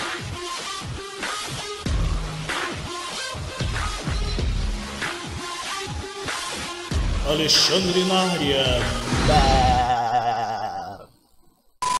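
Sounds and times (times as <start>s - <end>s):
warbling comic sound effect: 8.2s - 11.0s.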